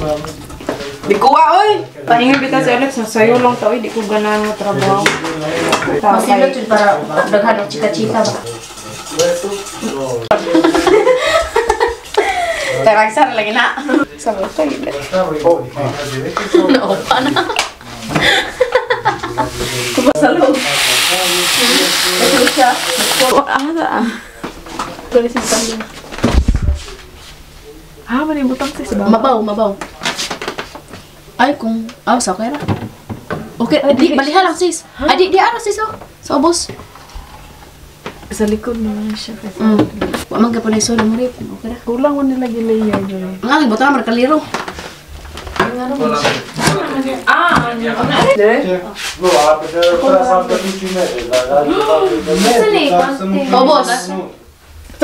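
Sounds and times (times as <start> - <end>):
people talking: 0.0 - 24.4, 25.1 - 25.9, 38.3 - 44.5, 45.6 - 54.4
metal spoon scraping frying pan: 7.9 - 10.6
people's voices: 15.9 - 24.4.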